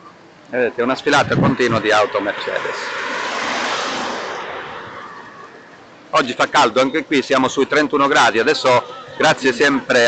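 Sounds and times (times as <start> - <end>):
car driving past: 1.4 - 6.0.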